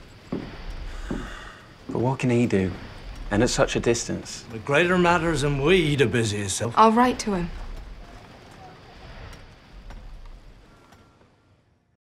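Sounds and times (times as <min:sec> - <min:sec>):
low ambient rumble: 0:00.0 - 0:10.9
soft knocks: 0:00.3 - 0:02.0.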